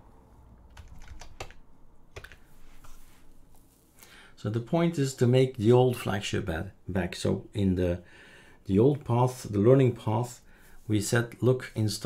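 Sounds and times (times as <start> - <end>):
computer keyboard key clicks: 0.7 - 2.4.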